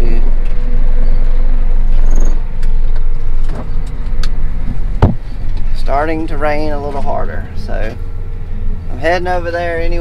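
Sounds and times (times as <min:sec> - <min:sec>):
tractor engine droning: 0:00.0 - 0:10.0.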